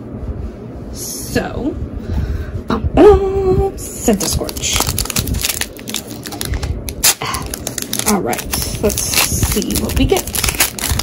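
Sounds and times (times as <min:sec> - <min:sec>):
foil wrapper crinkling and tearing: 0:04.2 - 0:11.0.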